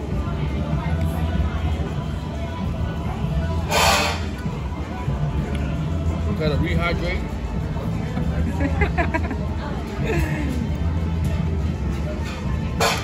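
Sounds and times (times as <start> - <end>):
faint music: 0.0 - 13.0.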